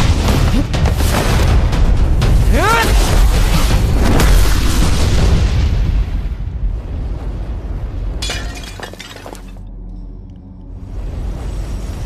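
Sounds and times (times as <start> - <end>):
low steady music: 5.9 - 12.0.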